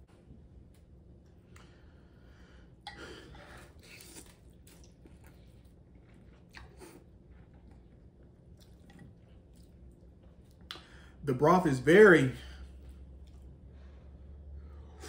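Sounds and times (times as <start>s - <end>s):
faint slurping and chewing: 1.3s - 11.2s, 12.4s - 15.0s.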